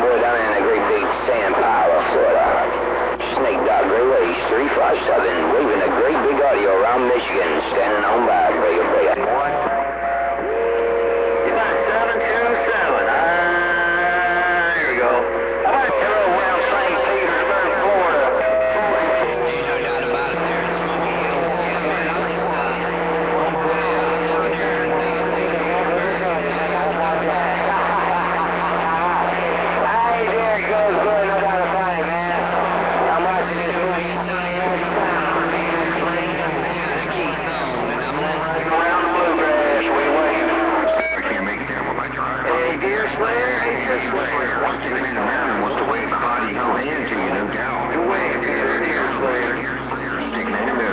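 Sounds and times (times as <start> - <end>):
garbled radio voices: 0.0 - 50.9
steady radio whistle tones: 0.0 - 50.9.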